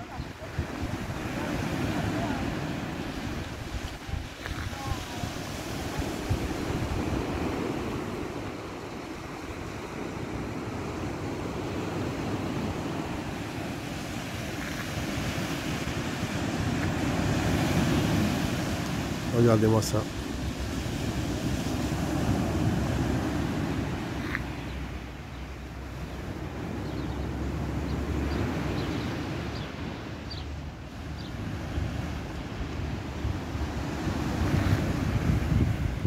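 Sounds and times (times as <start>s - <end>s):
wind buffeting microphone: 0.0s - 19.3s, 26.1s - 36.0s
sea waves breaking on beach: 0.0s - 36.0s.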